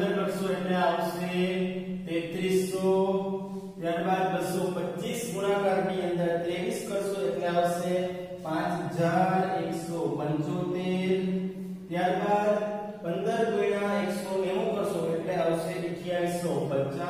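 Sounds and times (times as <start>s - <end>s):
man lecturing: 0.0s - 17.0s.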